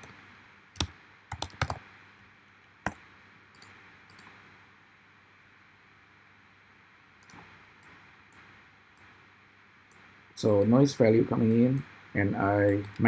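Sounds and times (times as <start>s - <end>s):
keyboard keys tapping: 0.8s - 1.8s
mouse clicks: 7.2s - 9.1s.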